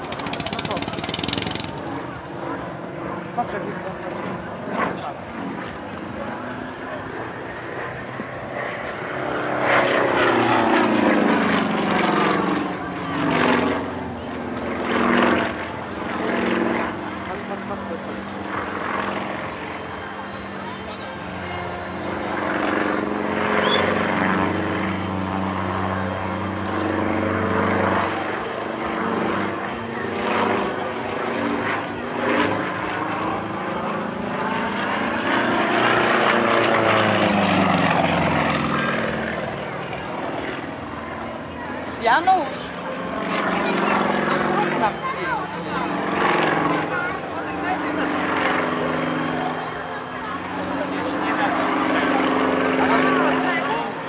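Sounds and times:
propeller plane engine droning: 0.0s - 54.0s.

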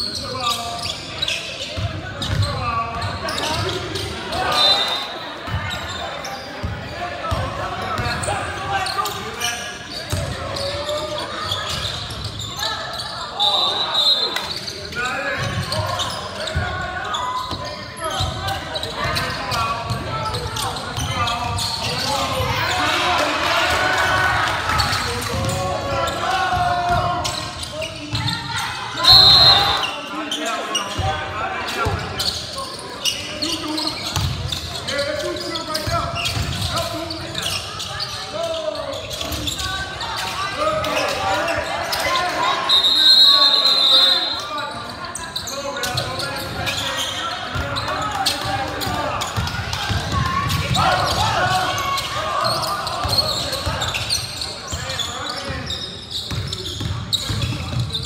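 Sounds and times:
voices calling out: 0.1s - 58.0s
referee whistle blasts: 4.4s - 5.2s, 13.4s - 14.6s, 29.0s - 29.9s, 42.5s - 44.5s.

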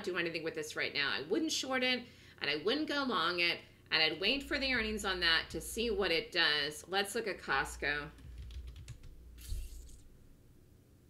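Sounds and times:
keyboard keys tapped lightly: 8.2s - 9.2s.

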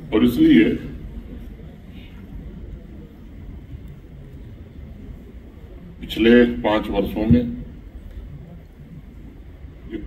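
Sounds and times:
low rumble of room noise: 0.0s - 10.0s.

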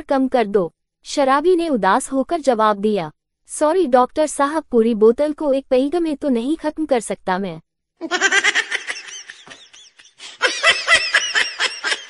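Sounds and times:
high-pitched giggling laugh track: 8.0s - 12.0s.

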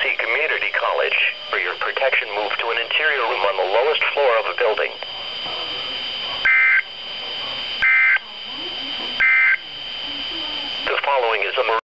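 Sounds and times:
faint high whine: 0.0s - 11.8s
radio hiss: 0.0s - 11.8s.

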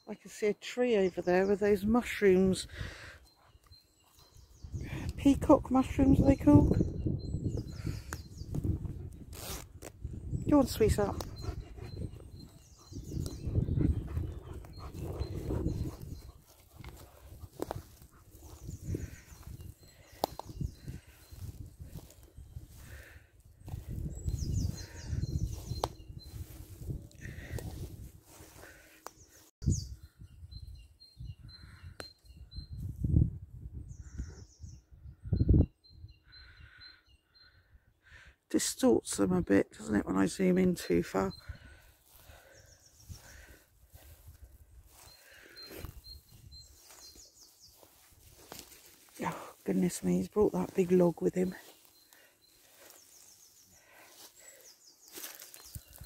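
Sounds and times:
woodland birds chirping: 0.0s - 56.0s
low rumbling on microphone: 11.2s - 19.8s, 23.6s - 28.4s.

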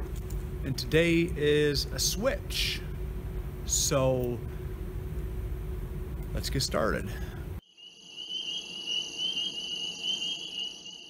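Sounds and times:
high-pitched trilling: 7.8s - 11.0s.

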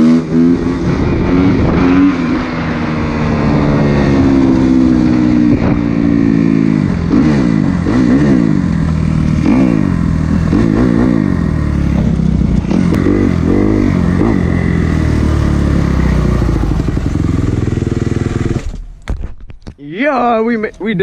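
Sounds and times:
dirt bike engine revving: 0.0s - 18.8s.

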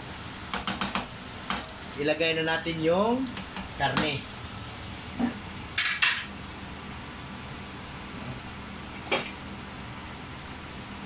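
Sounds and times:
food sizzling in a frying pan: 0.0s - 11.0s
dishes knocking: 0.6s - 1.6s.

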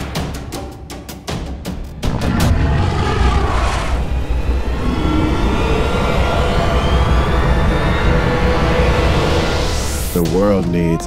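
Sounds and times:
low rumble: 2.0s - 9.8s
thin tone rising in pitch: 2.8s - 10.0s.

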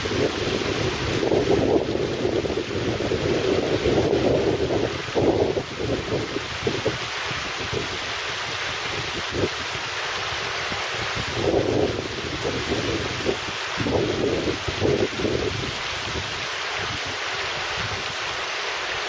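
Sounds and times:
river rushing over rocks: 0.0s - 19.0s
wind buffeting microphone: 0.0s - 19.0s.

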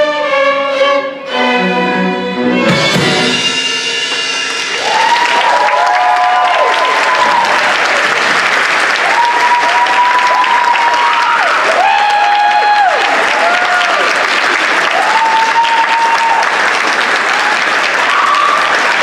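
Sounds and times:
audience clapping: 4.0s - 19.0s.

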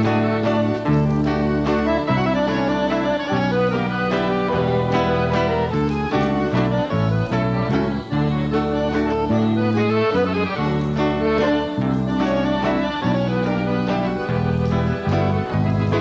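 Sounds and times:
accordion waltz with small band: 0.0s - 16.0s.

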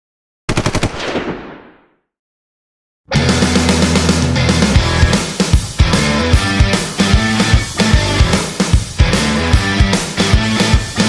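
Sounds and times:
machine-gun fire: 0.5s - 2.0s.

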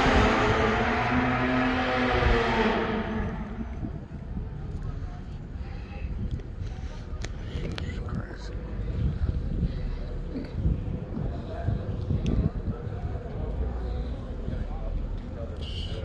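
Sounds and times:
car engine revving: 0.0s - 4.1s.

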